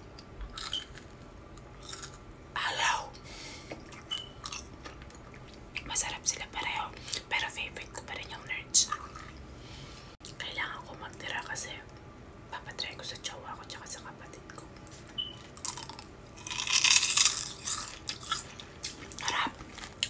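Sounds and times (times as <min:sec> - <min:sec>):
crunching and chewing candy: 0:00.4 - 0:02.3, 0:03.9 - 0:05.6, 0:15.4 - 0:20.0.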